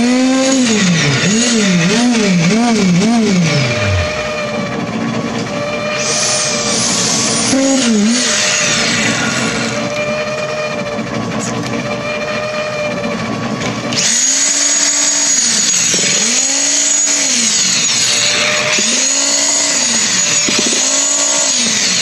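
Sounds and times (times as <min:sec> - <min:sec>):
concrete vibrator motor hum: 0:00.0 - 0:22.0.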